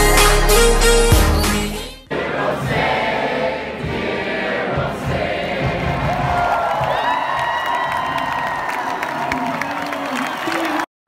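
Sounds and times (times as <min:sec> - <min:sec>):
stadium crowd cheering and clapping: 0:02.1 - 0:10.9.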